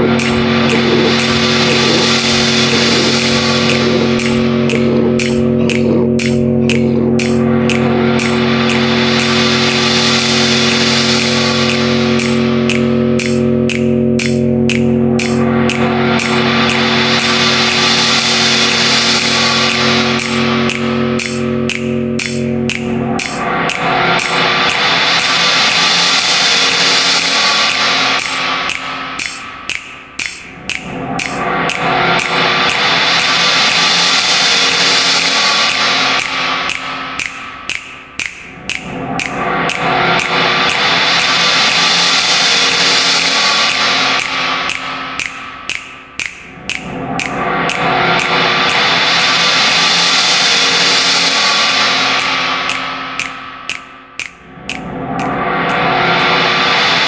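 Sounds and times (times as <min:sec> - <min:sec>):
fast sharp clicks: 0:00.0 - 0:56.8
hissing noise: 0:00.0 - 0:57.0
steady held tones: 0:00.0 - 0:57.0.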